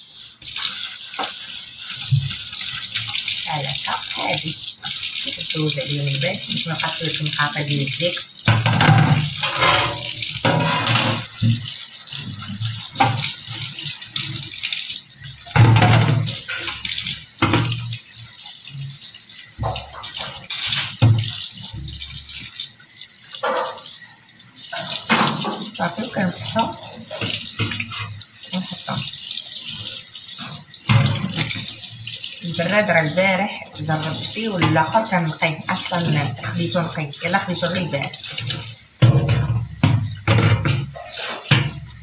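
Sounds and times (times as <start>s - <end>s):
tap running into metal sink: 1.1s - 14.3s, 15.4s - 18.1s, 19.4s - 22.6s, 24.7s - 32.2s, 33.8s - 42.0s.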